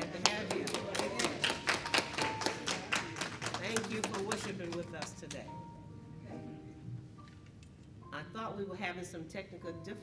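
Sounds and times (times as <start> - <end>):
people clapping: 0.0 - 5.5.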